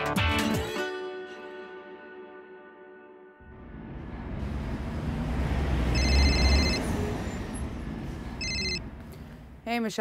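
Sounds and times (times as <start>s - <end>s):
rushing whoosh with deep rumble: 3.4s - 9.6s
electronic telephone ringing: 6.0s - 6.8s, 8.4s - 8.8s.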